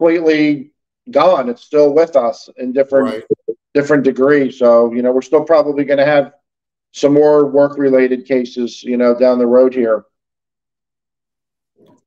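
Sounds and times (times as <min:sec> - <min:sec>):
man speaking: 0:02.8 - 0:03.4
faint short vocal sound: 0:03.0 - 0:03.4.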